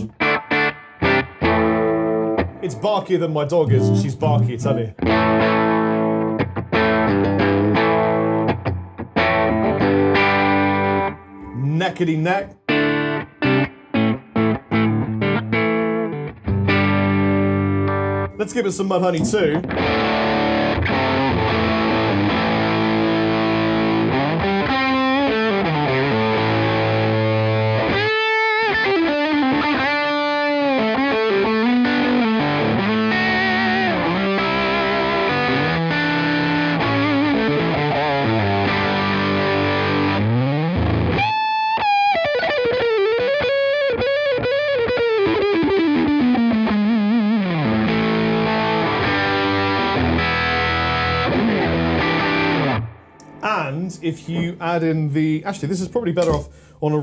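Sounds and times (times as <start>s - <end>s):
overdriven electric guitar lead: 0.0s - 54.7s.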